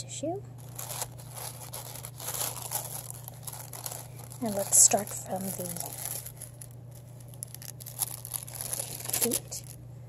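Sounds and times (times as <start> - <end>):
steady low hum: 0.0 - 10.0
tissue paper crinkling: 0.6 - 9.8.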